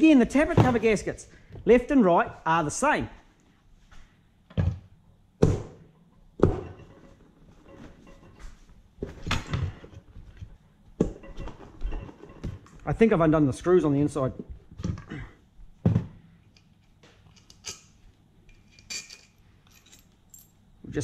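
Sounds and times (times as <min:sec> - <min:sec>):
metal knocks and clunks: 0:04.5 - 0:10.1.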